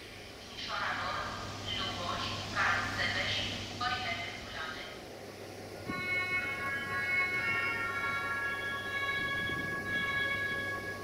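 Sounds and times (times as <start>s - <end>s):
locomotive horn blast: 5.9s - 11.0s.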